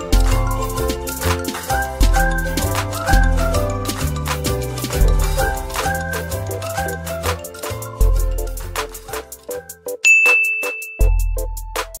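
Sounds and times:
background music with beat: 0:00.0 - 0:12.0
notification bell ding: 0:10.0 - 0:11.5.

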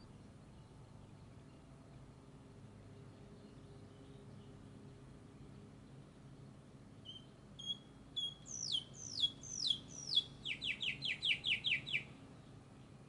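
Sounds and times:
songbird singing: 0:00.0 - 0:13.0.

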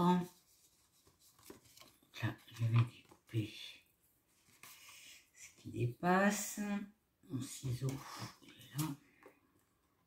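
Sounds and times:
card stock rustling: 0:00.3 - 0:03.4.

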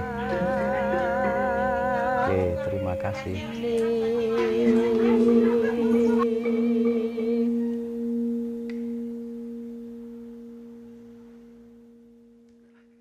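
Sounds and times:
background music held ringing note: 0:00.0 - 0:13.0.

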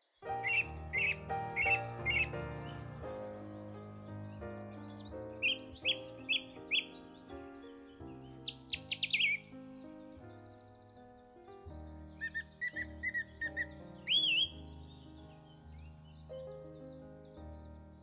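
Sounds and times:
background music of sustained chords: 0:00.0 - 0:18.0
birds chirping: 0:00.0 - 0:18.0
bird rising whistle: 0:00.4 - 0:02.4, 0:12.3 - 0:14.6.

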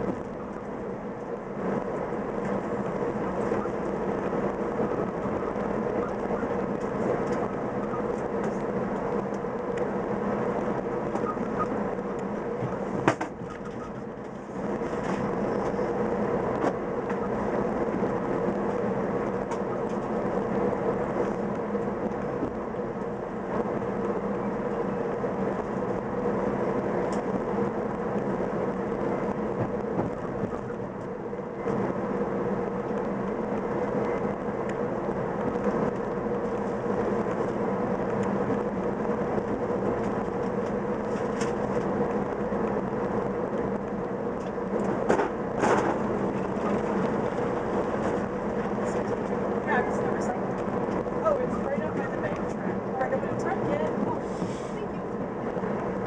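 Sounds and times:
train running rumble: 0:00.0 - 0:56.0.

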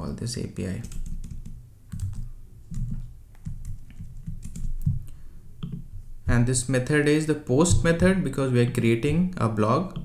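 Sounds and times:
computer keyboard typing: 0:00.7 - 0:05.1.

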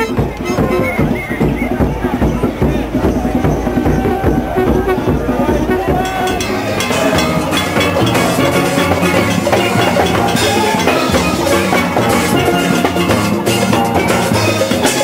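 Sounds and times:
drum and percussion beats: 0:00.0 - 0:15.0
steel pans playing melody: 0:00.0 - 0:15.0.

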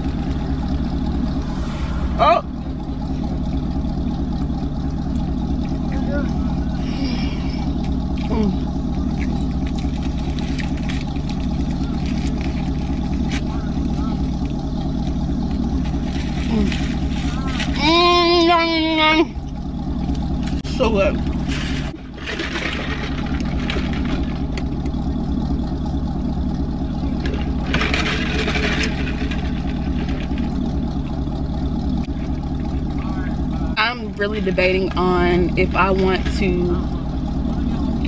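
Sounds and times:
car engine idling: 0:00.0 - 0:38.0.

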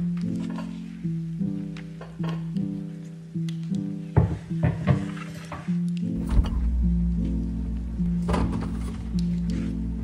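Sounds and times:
lo-fi music with plucked notes: 0:00.0 - 0:10.0.

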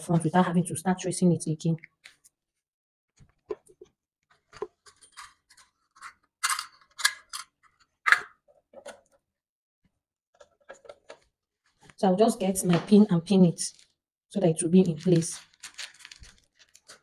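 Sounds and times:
paper rustling: 0:14.8 - 0:17.0.

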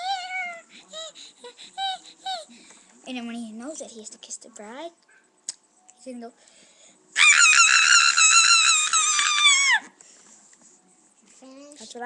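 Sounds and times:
boy screaming high-pitched: 0:07.2 - 0:09.9.

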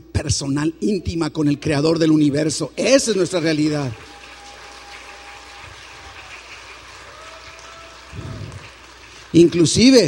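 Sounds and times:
recording noise hiss: 0:00.0 - 0:10.0.

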